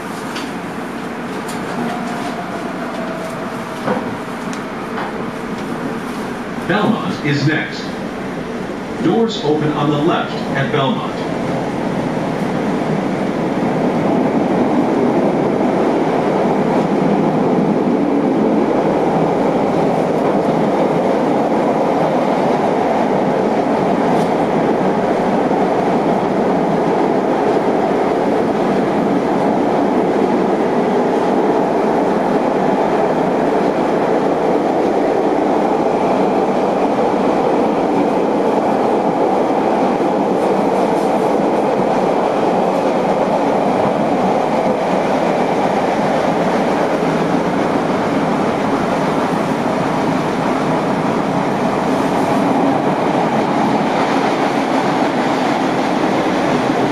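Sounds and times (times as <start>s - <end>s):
train wheels on rails: 0.0s - 9.0s, 9.7s - 56.9s.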